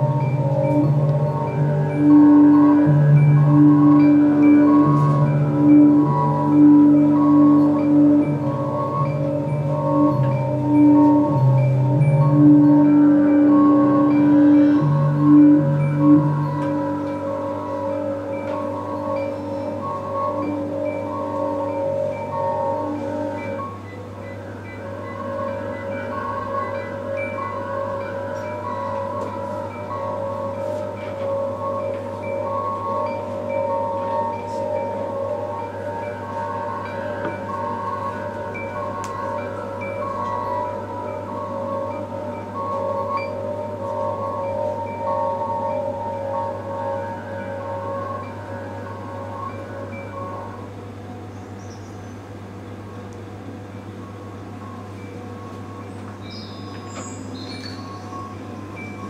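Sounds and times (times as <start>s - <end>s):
chime-like electronic tones: 0.0s - 51.0s, 53.8s - 59.0s
low electronic drone: 0.0s - 59.0s.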